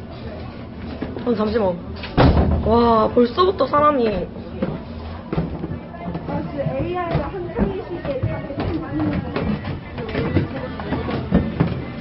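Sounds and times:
loud thud: 2.2s - 2.7s
people's voices: 2.7s - 12.0s.

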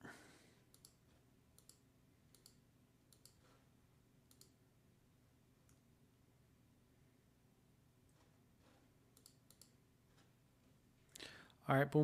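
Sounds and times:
computer mouse clicks: 0.7s - 3.6s, 4.2s - 4.6s, 8.1s - 10.4s.

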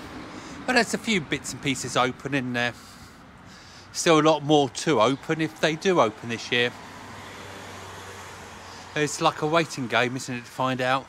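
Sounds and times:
distant road traffic hiss: 0.0s - 11.0s.

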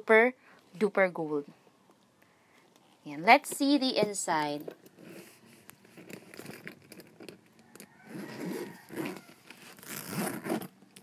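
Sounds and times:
bag rustling: 3.6s - 10.8s
metal zipper pulled open: 4.6s - 11.0s.

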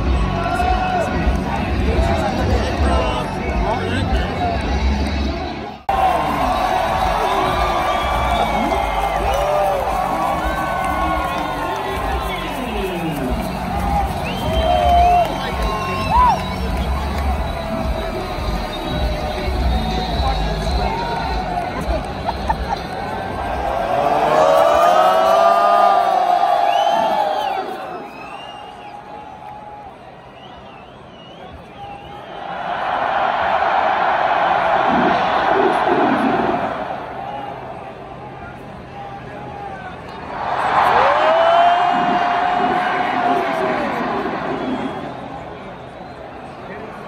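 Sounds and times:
stadium crowd cheering: 0.0s - 47.0s.

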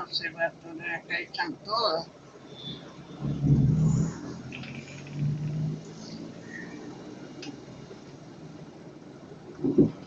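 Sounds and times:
car engine hum from cabin: 0.0s - 10.0s.

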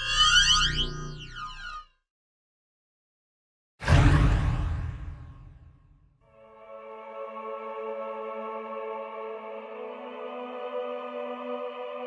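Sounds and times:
electronic tones sweeping in pitch: 0.0s - 2.0s.

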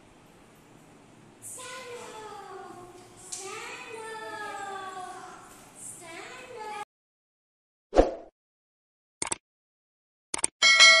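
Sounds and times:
quick double clicks: 9.2s - 9.4s, 10.3s - 10.5s
bright bell ding: 10.6s - 11.0s.

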